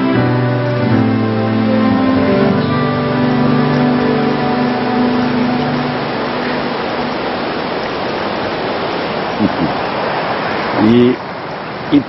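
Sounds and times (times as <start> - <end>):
background music: 0.0 - 7.8
whitewater rapids rushing: 0.0 - 12.0.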